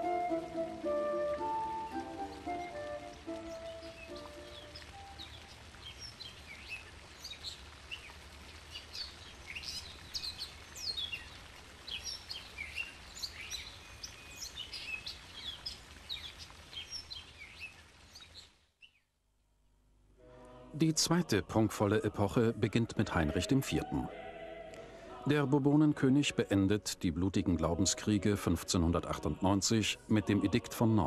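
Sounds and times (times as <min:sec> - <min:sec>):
flute melody: 0:00.0 - 0:05.3
faint background hiss: 0:00.0 - 0:31.0
small birds chirping: 0:02.2 - 0:19.1.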